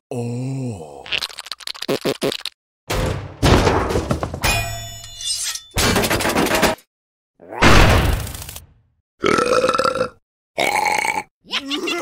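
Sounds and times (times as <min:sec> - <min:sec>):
crash: 0:02.9 - 0:06.8, 0:07.6 - 0:08.7
cartoon character burping: 0:09.2 - 0:12.0.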